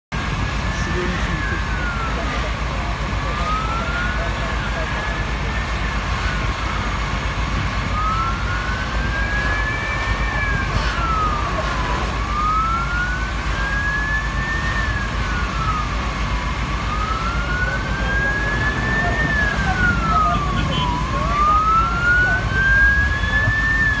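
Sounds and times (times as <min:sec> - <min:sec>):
steady low rumble: 0:00.1 - 0:24.0
emergency siren wailing: 0:00.2 - 0:24.0.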